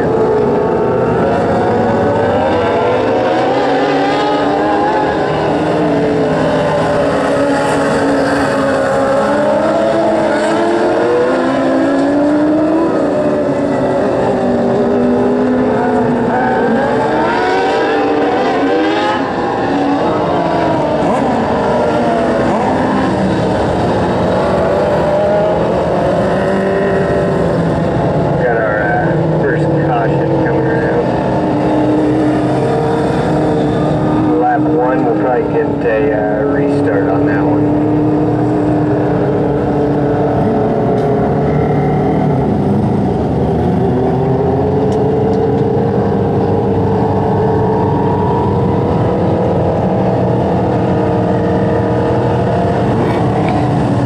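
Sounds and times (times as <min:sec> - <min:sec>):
small race car engines: 0:00.0 - 0:54.0.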